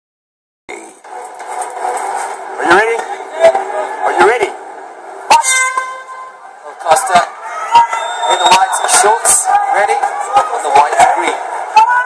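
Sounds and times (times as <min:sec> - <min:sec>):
arena crowd noise: 0:00.7 - 0:12.0.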